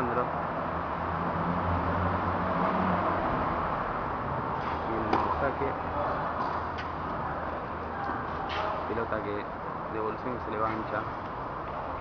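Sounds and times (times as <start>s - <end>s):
tennis ball struck by racket: 4.6s - 5.5s.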